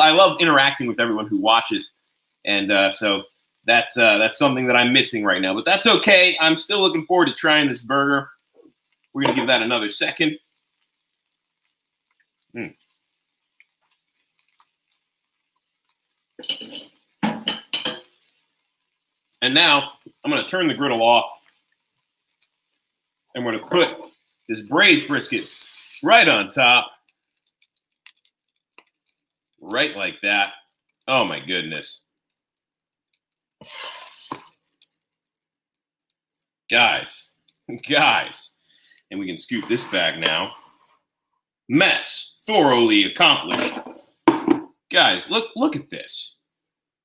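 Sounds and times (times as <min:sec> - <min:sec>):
meat crackling on a griddle: 0:00.0 - 0:41.0
metal spatula scraping griddle: 0:16.4 - 0:18.2, 0:24.9 - 0:26.0, 0:39.6 - 0:40.9
utensils and dishes clattering: 0:16.4 - 0:18.2.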